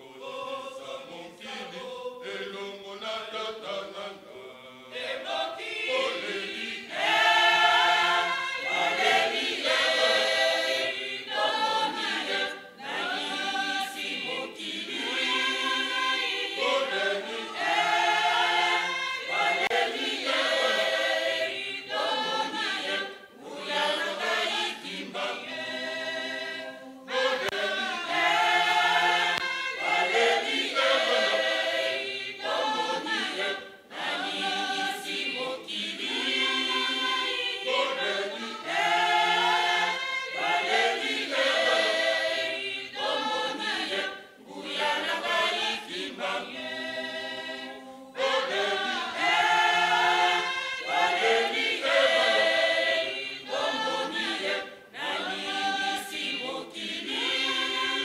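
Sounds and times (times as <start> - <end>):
mixed choir singing a hymn: 0.0 - 58.0.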